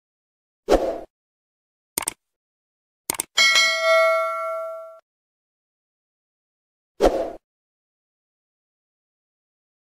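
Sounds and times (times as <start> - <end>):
quick clicks: 2.0 - 2.2, 3.1 - 3.4
bell-like ding: 3.4 - 5.0.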